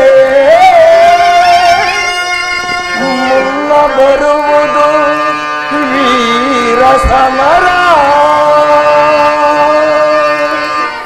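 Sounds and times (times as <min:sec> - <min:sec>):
instrumental drone: 0:00.0 - 0:11.0
man singing held note: 0:00.0 - 0:11.0.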